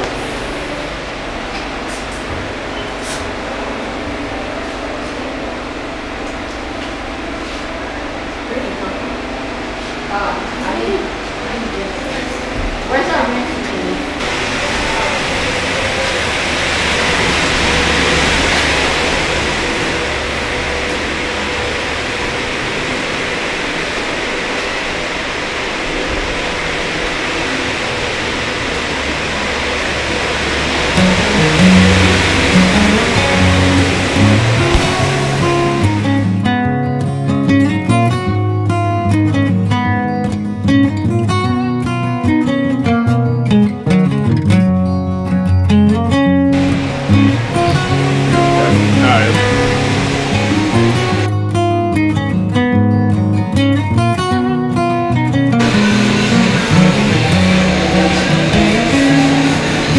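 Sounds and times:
steady rushing noise: 0.0 - 36.5, 46.5 - 51.6, 55.6 - 59.9
strummed acoustic guitar music: 29.6 - 59.9.

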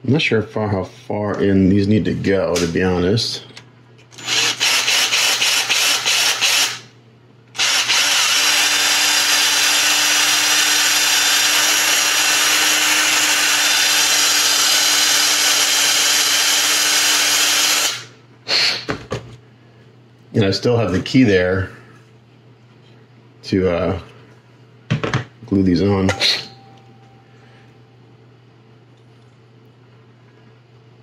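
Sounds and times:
cordless drill drilling: 4.2 - 6.8, 7.6 - 18.1.

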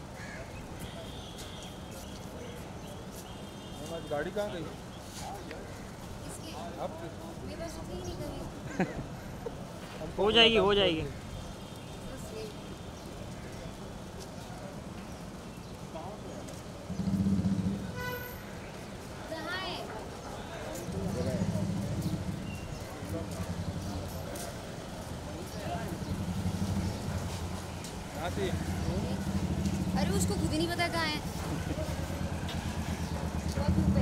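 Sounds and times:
low vehicle rumble: 16.9 - 18.1, 20.9 - 24.4, 25.4 - 34.0
car horn toot: 17.9 - 18.5
people's voices: 19.1 - 34.0.

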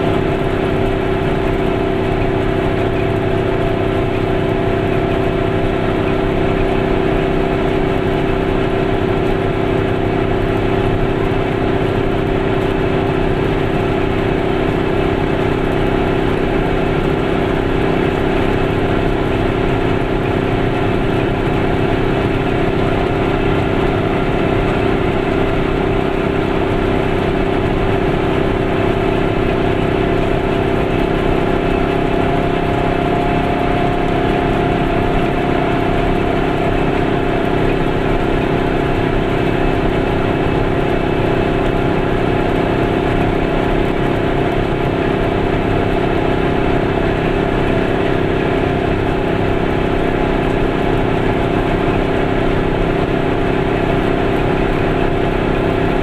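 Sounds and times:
road noise: 0.0 - 56.0
small two-stroke engine running: 0.0 - 56.0.

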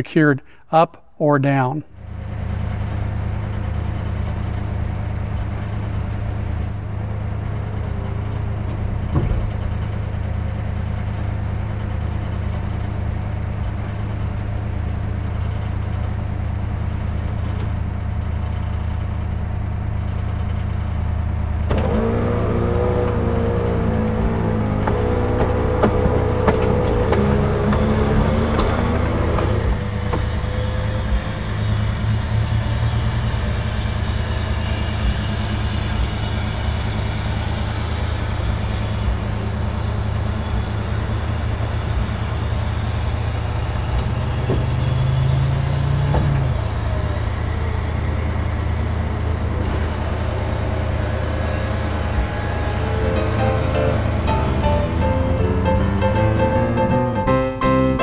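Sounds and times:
car engine idling: 2.0 - 57.4
electric motors humming: 21.7 - 56.5.

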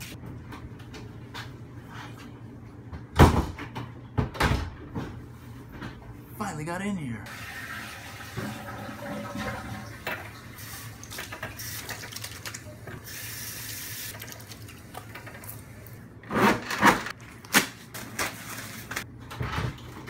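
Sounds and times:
faucet water running into sink: 7.3 - 15.5
hands washing under water: 10.6 - 15.7.

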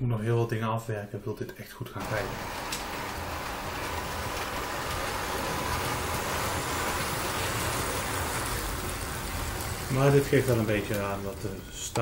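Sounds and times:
model train rumbling on rails: 2.0 - 12.0.

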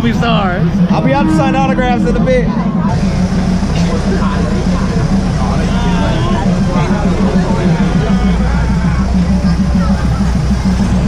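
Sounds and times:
people chattering: 0.0 - 11.0
train engine droning: 0.0 - 11.0.

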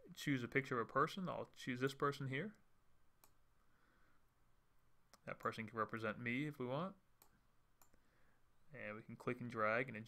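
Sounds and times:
computer mouse clicks: 3.2 - 3.4.

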